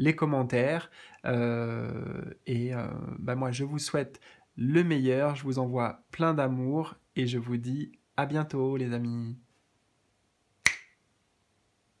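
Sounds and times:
finger snap: 10.6 - 11.0.

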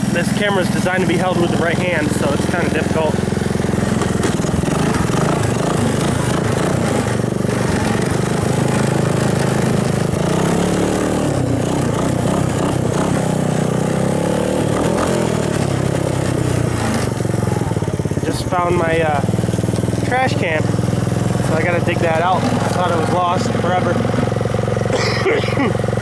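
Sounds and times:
motorbike engine revving: 0.0 - 26.0.

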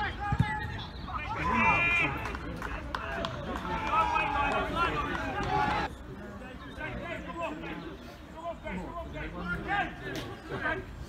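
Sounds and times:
players and spectators shouting: 0.0 - 5.9.

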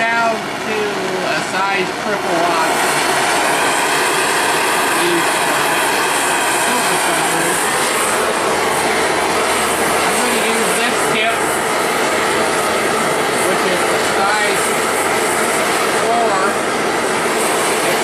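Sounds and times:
torch flame hissing: 0.0 - 18.0.

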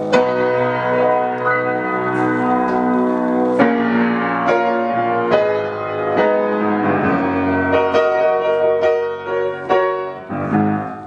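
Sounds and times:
piano chord with higher notes: 0.0 - 11.0.

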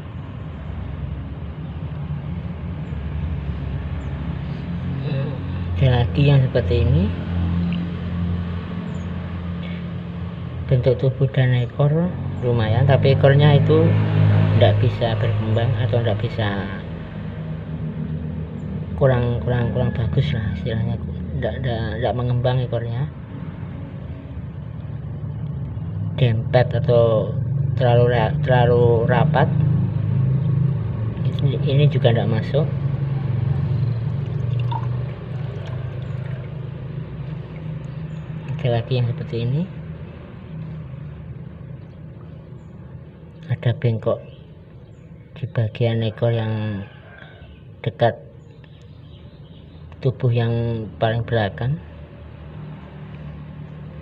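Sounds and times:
low motor hum: 0.0 - 45.5
water dripping and splashing: 33.9 - 38.6.

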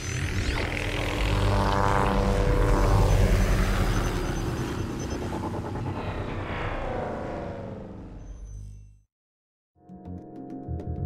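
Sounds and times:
whirring propeller-like rumble: 0.0 - 8.6.

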